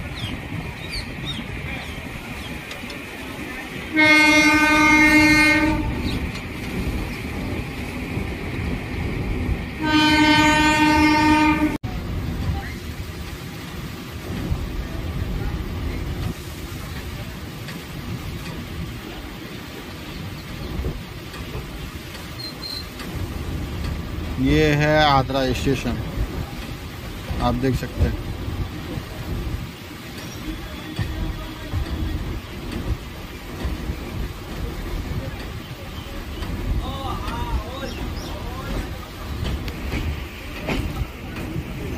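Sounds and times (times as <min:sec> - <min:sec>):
moving train rumble and rattle: 0:00.0 - 0:41.9
train horn blasts: 0:03.9 - 0:06.2, 0:09.8 - 0:11.8.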